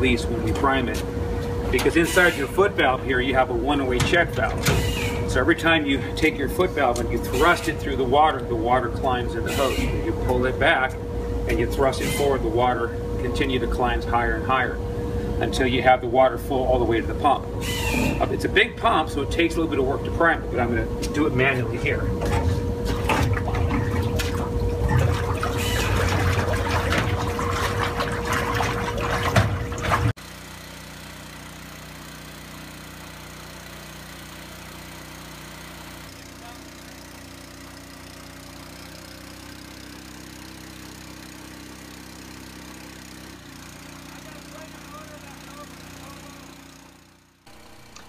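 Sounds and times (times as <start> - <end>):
steady hum: 0.0 - 30.2, 35.7 - 48.0
water sloshing and splashing: 22.2 - 30.2.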